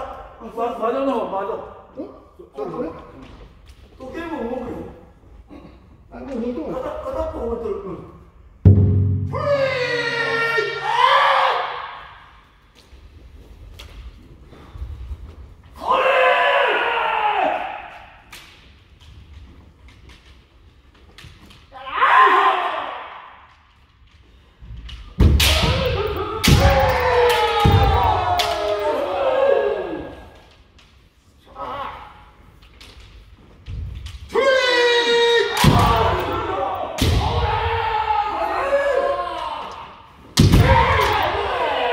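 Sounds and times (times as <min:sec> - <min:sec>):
people yelling: 0:09.3 - 0:12.2, 0:15.8 - 0:18.1, 0:21.7 - 0:23.4, 0:25.4 - 0:30.5, 0:34.3 - 0:41.9
bamboo sword strikes: 0:25.2 - 0:28.6.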